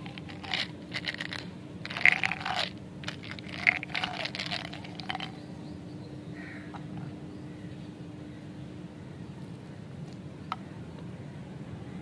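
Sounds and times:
hard candies rattling: 0.0s - 5.4s.

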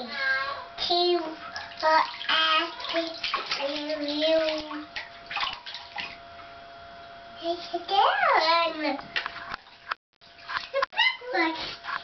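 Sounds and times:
bathwater splashing: 1.0s - 6.5s, 8.6s - 12.0s.

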